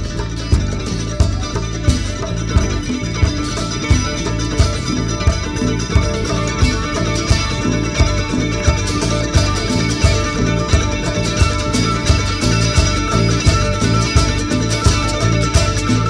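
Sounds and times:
live country-rock band playing: 0.0s - 16.0s.

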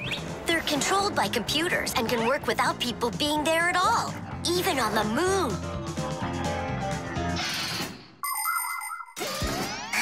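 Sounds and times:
background music: 0.0s - 7.9s.

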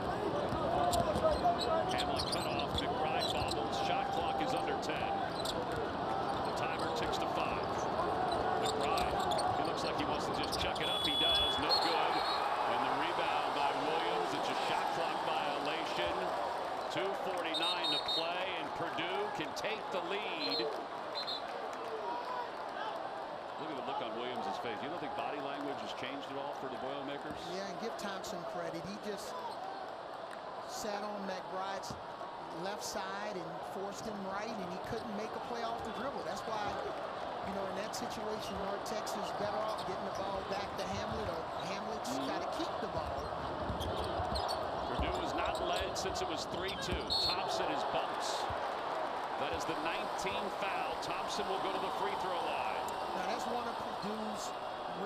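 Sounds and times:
players calling out: 0.2s - 21.4s, 34.7s - 55.0s.

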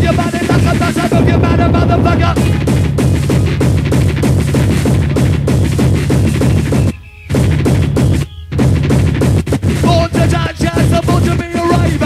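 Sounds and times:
hardcore techno music: 0.0s - 12.0s.

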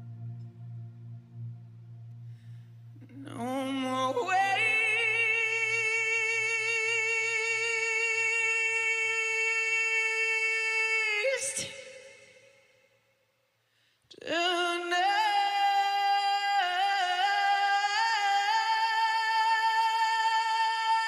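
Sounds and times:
man singing long notes with vibrato: 0.0s - 12.0s, 14.3s - 21.0s.

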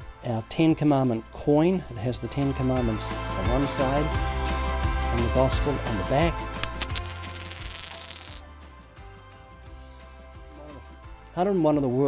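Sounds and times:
coin spinning on hard surface: 6.6s - 8.4s.

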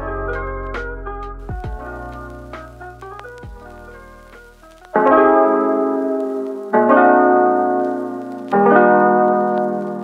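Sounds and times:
piano-like keyboard chords: 0.0s - 10.0s.

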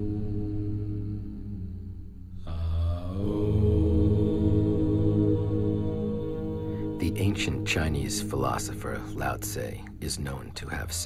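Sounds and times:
ambient music: 0.0s - 11.0s
low chanted vocal drone: 0.0s - 11.0s.

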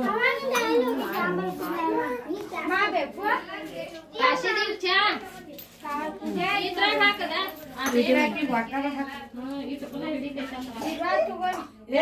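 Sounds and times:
children talking and calling out: 0.0s - 7.6s.

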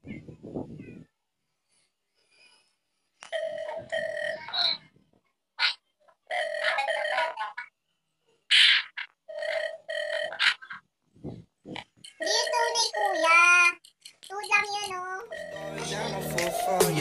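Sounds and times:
high-pitched wordless vocal sounds: 12.1s - 17.0s.

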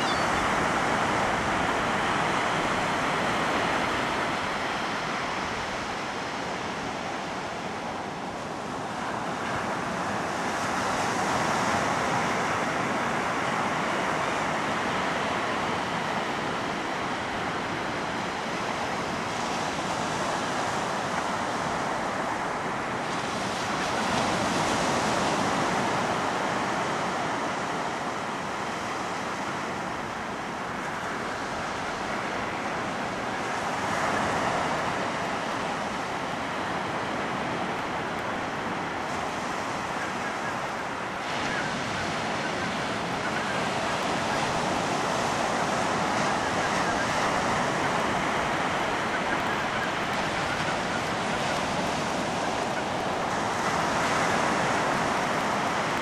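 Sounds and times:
ocean surf breaking: 0.0s - 56.0s.

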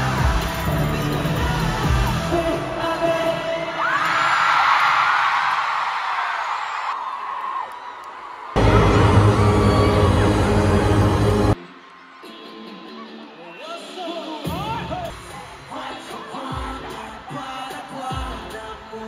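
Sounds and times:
bass-heavy music: 0.0s - 3.0s, 8.6s - 11.6s
concert music through pa: 0.0s - 4.3s, 8.6s - 19.0s
fans screaming: 8.5s - 12.3s.

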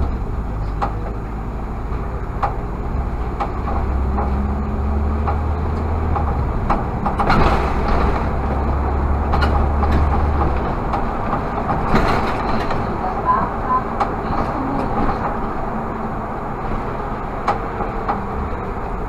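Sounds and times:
bus engine droning: 0.0s - 19.0s
clicks and rattles in cab: 5.2s - 13.1s.

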